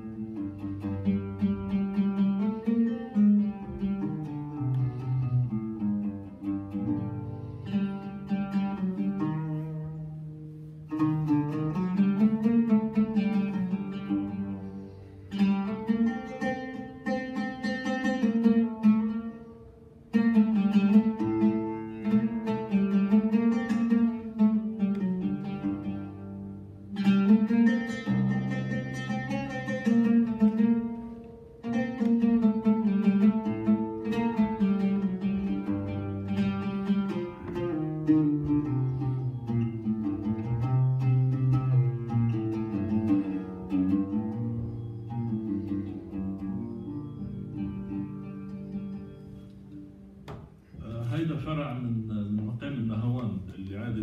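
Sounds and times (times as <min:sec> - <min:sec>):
oud plucked melody: 0:00.0 - 0:54.0.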